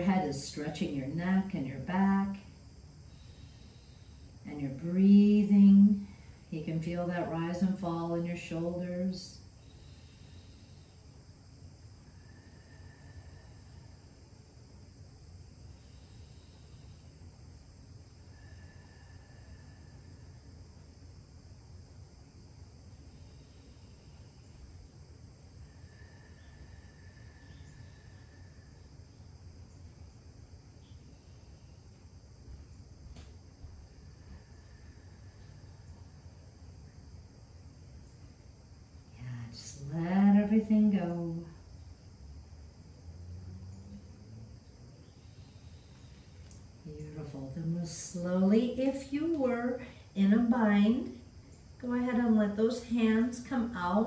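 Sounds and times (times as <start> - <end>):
low hum and hiss: 0.0 - 54.0.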